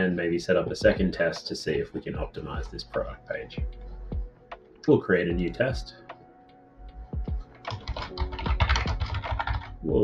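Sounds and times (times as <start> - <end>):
computer keyboard typing: 7.4 - 10.0.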